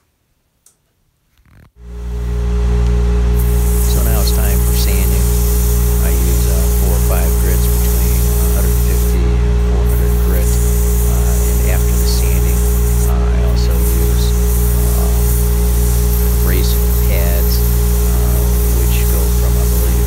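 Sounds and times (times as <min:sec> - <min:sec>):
lathe motor humming: 0:01.9 - 0:20.0
sandpaper hissing on spinning wood: 0:03.4 - 0:20.0.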